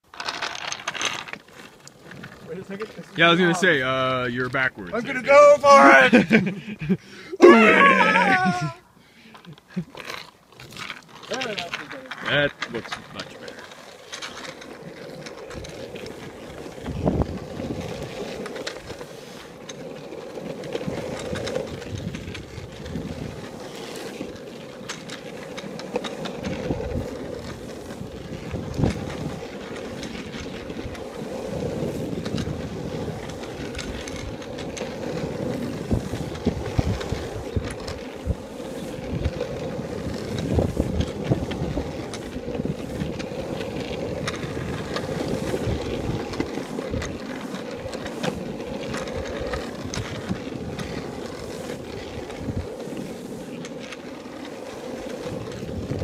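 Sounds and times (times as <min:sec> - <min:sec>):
skateboard wheels rolling on asphalt: 0:00.0 - 0:56.0.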